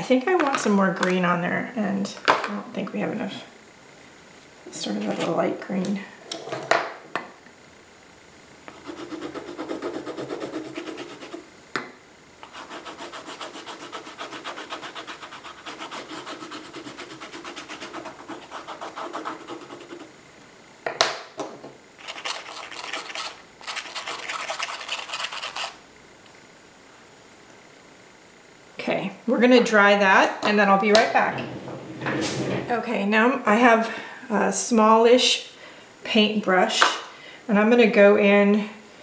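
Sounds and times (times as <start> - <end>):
crayon scrubbing on paper: 8.7 - 11.4, 12.4 - 20.1, 22.0 - 25.8.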